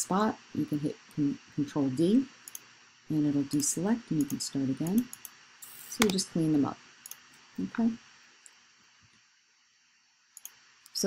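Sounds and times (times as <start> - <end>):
computer mouse clicks: 2.4 - 2.7, 5.0 - 6.2, 7.0 - 7.2, 10.4 - 10.6.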